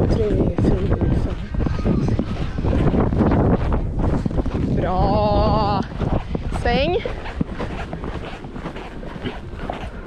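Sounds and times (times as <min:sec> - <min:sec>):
hooves thudding on sand: 0:00.0 - 0:10.0
wind buffeting microphone: 0:00.0 - 0:10.0.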